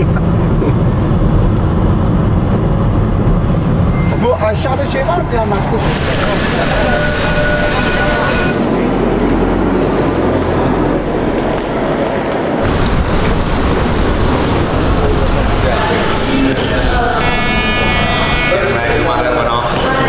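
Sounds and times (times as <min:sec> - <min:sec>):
traffic rumble: 0:00.0 - 0:20.0
crowd chatter: 0:04.4 - 0:20.0
high-pitched sound: 0:13.8 - 0:19.7.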